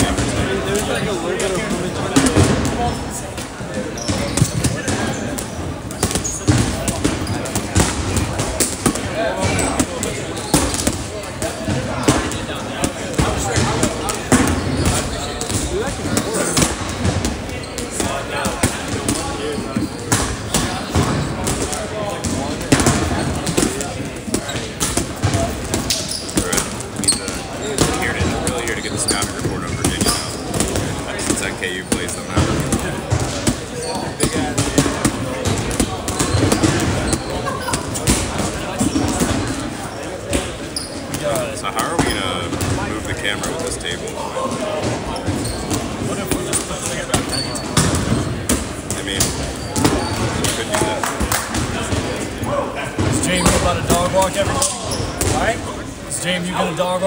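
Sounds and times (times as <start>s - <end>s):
balls bouncing on wooden floor: 0.0s - 55.7s
players chattering: 0.0s - 57.0s.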